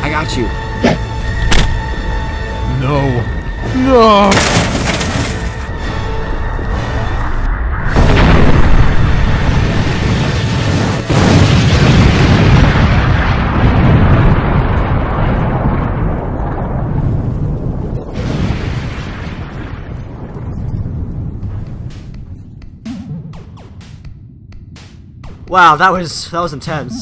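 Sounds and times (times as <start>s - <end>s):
loud rumbling blast: 6.7s - 22.1s.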